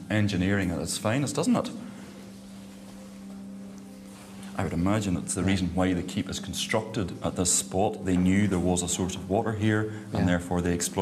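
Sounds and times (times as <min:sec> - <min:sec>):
low hum of held tones: 0:00.0 - 0:11.0.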